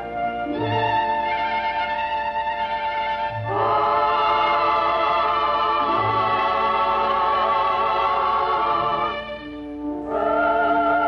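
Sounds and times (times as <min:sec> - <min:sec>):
choir holding a chord: 0:03.0 - 0:11.0.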